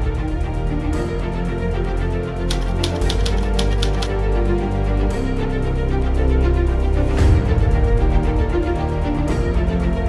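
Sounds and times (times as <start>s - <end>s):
background music with low bass: 0.0s - 10.0s
typewriter keys clacking: 2.5s - 4.2s.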